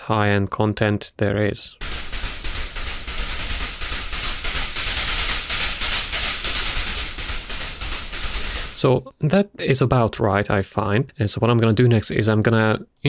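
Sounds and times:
synthesized noise percussion hiss: 1.8s - 9.0s.

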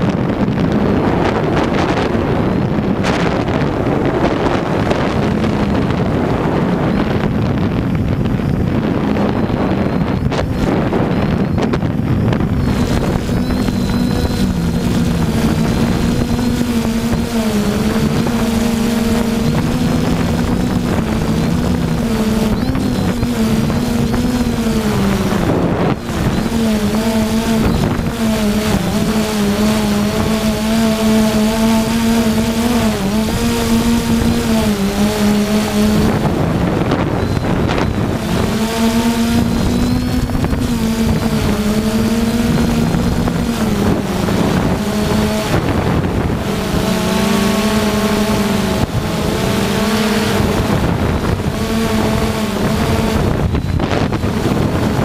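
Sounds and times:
drone motors humming: 0.0s - 55.0s
wind on microphone: 0.0s - 55.0s.

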